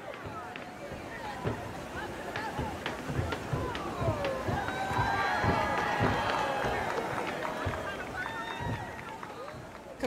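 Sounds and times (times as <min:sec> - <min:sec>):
ropes and feet thumping on stage: 0:00.0 - 0:09.9
crowd chatter: 0:00.0 - 0:10.0.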